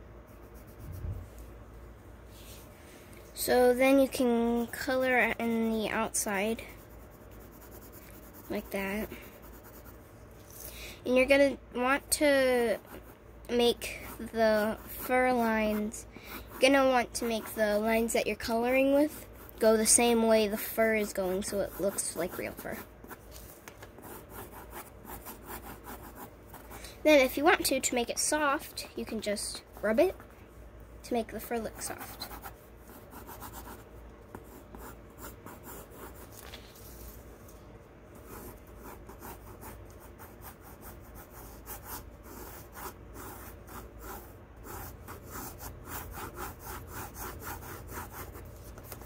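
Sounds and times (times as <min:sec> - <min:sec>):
pencil scratching on paper: 0:04.1 - 0:10.0, 0:12.5 - 0:26.7, 0:31.4 - 0:36.4, 0:38.2 - 0:49.0.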